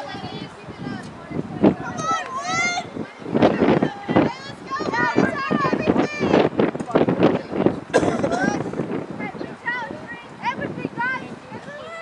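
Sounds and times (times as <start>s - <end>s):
distant voices shouting: 1.6s - 6.5s, 8.0s - 12.0s.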